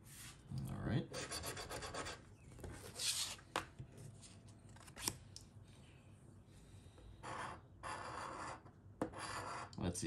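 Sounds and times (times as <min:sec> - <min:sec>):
coin scraping scratch card: 0:07.2 - 0:09.7.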